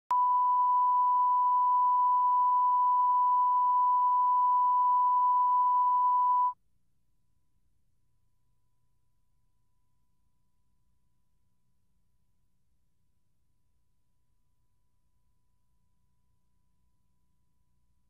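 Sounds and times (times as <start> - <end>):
steady test tone: 0.1 - 6.6.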